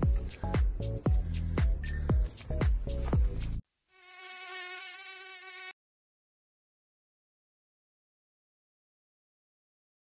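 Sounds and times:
mosquito buzzing: 0.1 - 5.8.

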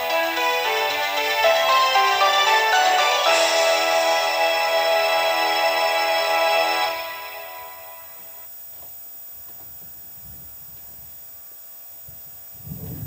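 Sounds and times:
trailer music: 0.0 - 8.4.

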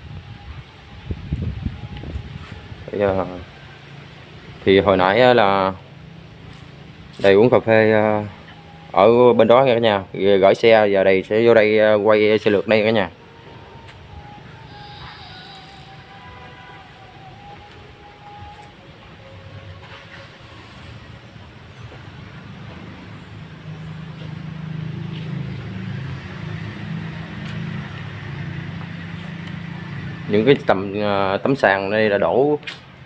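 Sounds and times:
low engine hum: 13.1 - 31.4.

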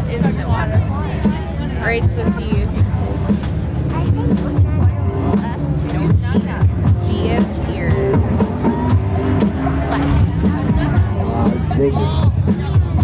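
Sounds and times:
music over loudspeaker: 0.0 - 13.0
people talking: 0.0 - 13.0.

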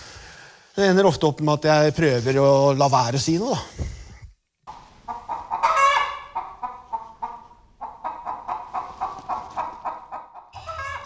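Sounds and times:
chickens clucking: 4.7 - 11.0.

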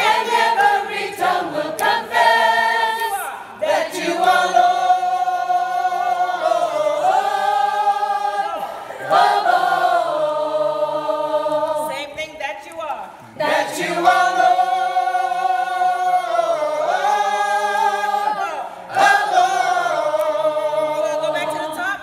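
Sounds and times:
gospel choir singing: 0.0 - 12.2, 13.1 - 22.0.

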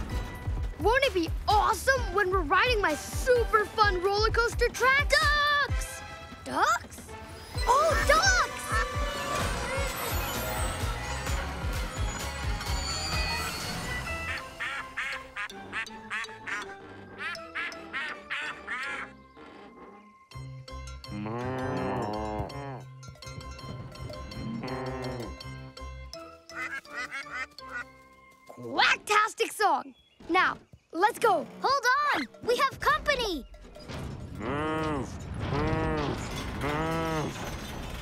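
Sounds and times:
background music: 0.0 - 38.0
ducklings quacking: 14.3 - 19.2, 26.5 - 27.9
cow mooing: 21.1 - 22.9, 24.4 - 25.5.

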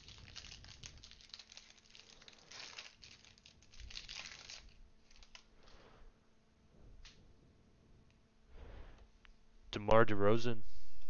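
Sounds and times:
foil wrapper crinkling and tearing: 0.0 - 5.5.

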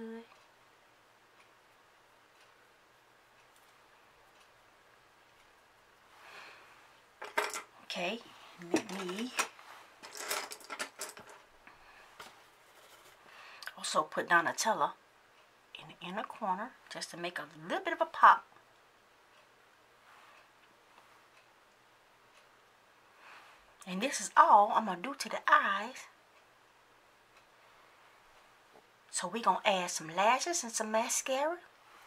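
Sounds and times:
soft brushing hiss: 0.0 - 32.0
soft ticks: 0.3 - 0.6, 1.2 - 6.1, 15.3 - 15.6, 18.5 - 19.6, 20.3 - 22.8, 26.3 - 27.6
brushes clattering on tabletop: 7.2 - 7.7, 8.7 - 11.4.

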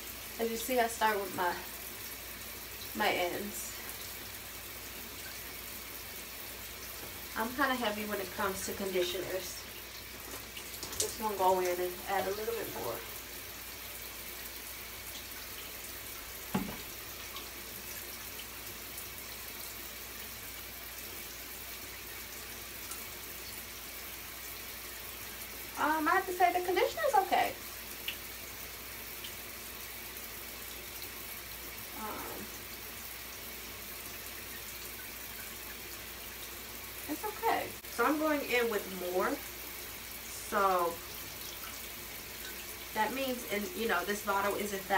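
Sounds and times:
shower water running: 0.0 - 44.9
person's voice: 0.4 - 1.6, 3.0 - 3.8, 7.4 - 9.6, 11.0 - 13.1, 25.8 - 27.6, 32.0 - 32.5, 37.1 - 39.4, 40.4 - 41.0, 43.0 - 44.9
light knock: 16.5 - 16.9.

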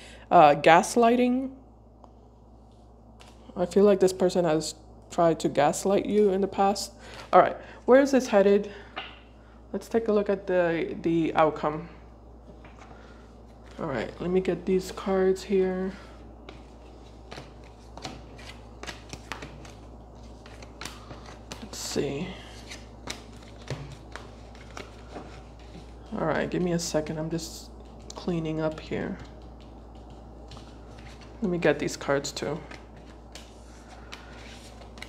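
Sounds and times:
cards being shuffled: 16.4 - 26.2, 29.1 - 31.9, 32.5 - 35.0.

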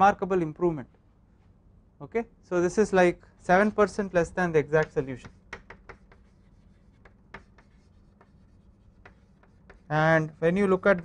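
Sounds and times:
chalk scratching on blackboard: 4.8 - 11.0.

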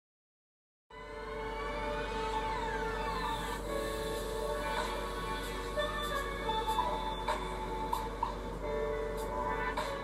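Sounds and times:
low steady hum: 0.9 - 10.0
music with sliding tones: 0.9 - 10.0.

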